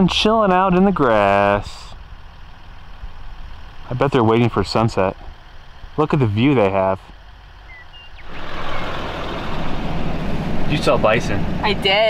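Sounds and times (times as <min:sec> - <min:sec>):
low vehicle rumble: 0:00.0 - 0:12.0.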